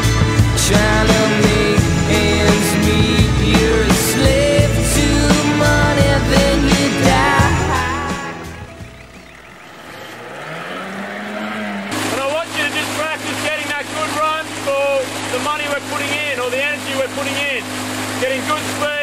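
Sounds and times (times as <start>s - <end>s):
low tone rising in pitch: 0.0s - 12.0s
motorboat engine running: 0.0s - 19.0s.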